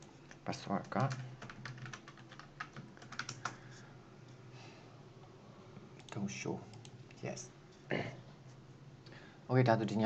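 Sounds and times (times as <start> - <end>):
typing on computer keyboard: 0.3 - 3.6.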